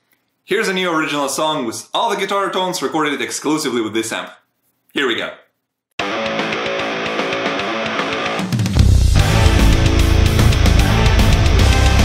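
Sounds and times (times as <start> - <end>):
electric guitar melodic line: 6.0 - 12.0
heavy metal band playing: 6.0 - 12.0.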